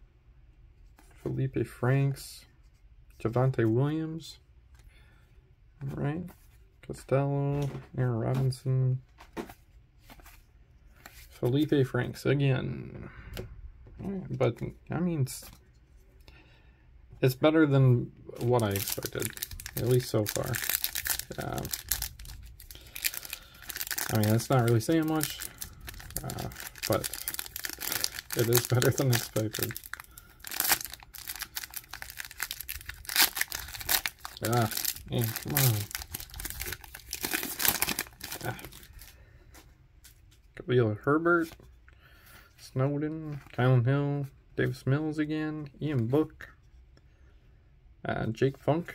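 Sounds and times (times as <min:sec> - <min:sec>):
cards handled by hand: 0:07.5 - 0:11.7, 0:18.4 - 0:40.5.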